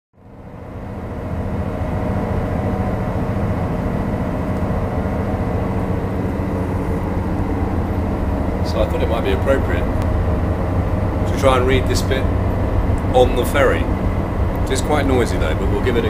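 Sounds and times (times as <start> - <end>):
faint steady machine tones: 0.2 - 16.0
ferry engines rumbling: 0.2 - 16.0.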